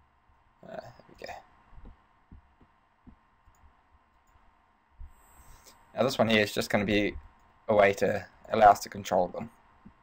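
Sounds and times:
faint low thumps: 1.7 - 4.1.

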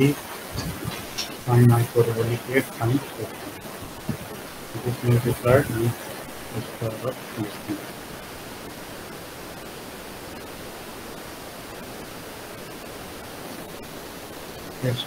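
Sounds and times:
microphone hiss: 0.0 - 15.0.

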